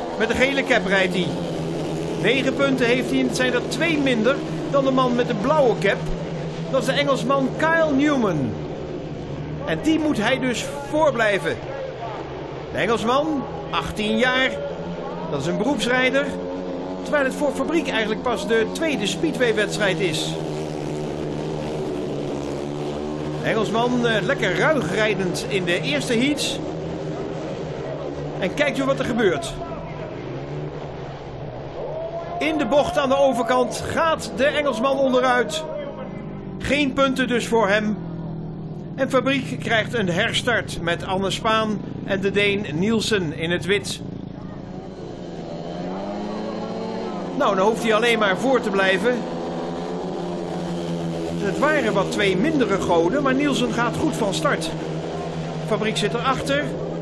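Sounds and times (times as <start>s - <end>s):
motorcycle engines racing: 0.0s - 57.0s.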